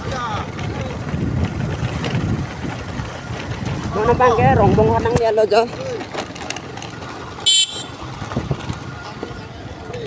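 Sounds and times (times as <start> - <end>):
wind buffeting microphone: 0.0 - 5.8, 7.9 - 9.9
motorcycle engine rumble: 0.0 - 10.0.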